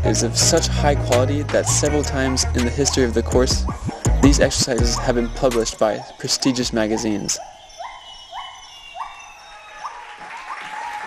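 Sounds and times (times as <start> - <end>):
animal whooping calls: 3.6 - 10.9.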